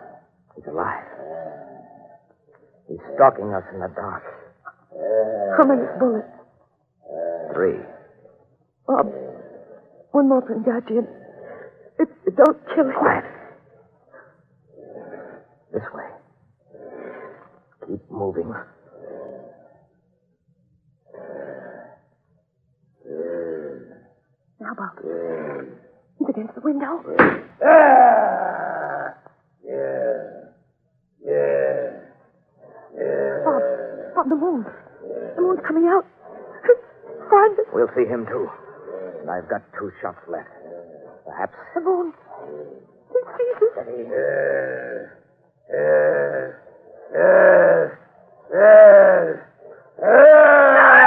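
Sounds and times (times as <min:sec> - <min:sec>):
low voice groaning: 0:00.0 - 0:02.2, 0:02.9 - 0:06.4, 0:07.1 - 0:08.1, 0:08.9 - 0:09.8, 0:14.8 - 0:16.2, 0:16.8 - 0:19.7, 0:21.1 - 0:22.0, 0:23.0 - 0:24.1, 0:24.8 - 0:25.9, 0:27.2 - 0:30.6, 0:31.2 - 0:32.2, 0:32.9 - 0:51.0
person wailing: 0:27.6 - 0:29.1, 0:33.3 - 0:33.8.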